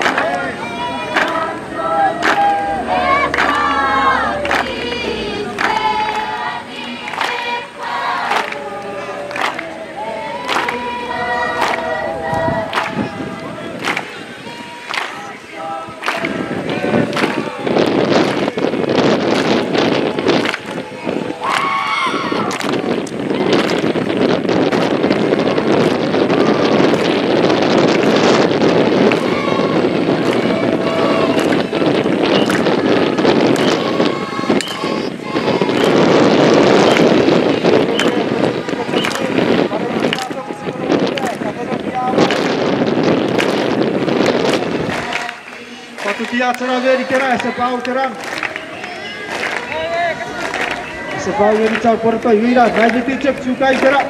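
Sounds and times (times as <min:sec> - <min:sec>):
group of voices singing: 0:00.0 - 0:52.0
wind buffeting microphone: 0:00.0 - 0:54.0.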